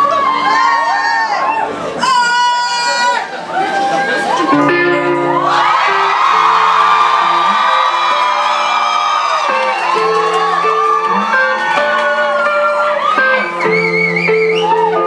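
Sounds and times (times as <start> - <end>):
crowd whooping and cheering: 0.0 - 15.0
guitar playing slow notes: 4.4 - 8.6, 9.4 - 15.0.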